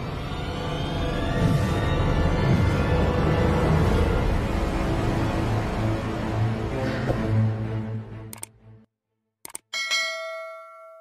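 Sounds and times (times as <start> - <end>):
bright bell ding: 9.7 - 11.0.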